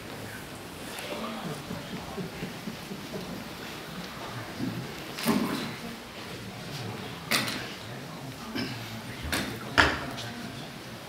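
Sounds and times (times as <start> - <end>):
murmur of voices: 0.0 - 11.0
room noise rumble: 0.0 - 11.0.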